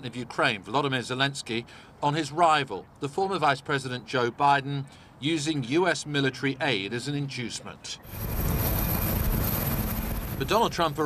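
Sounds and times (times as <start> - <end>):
helicopter rotor and turbine: 8.0 - 11.0.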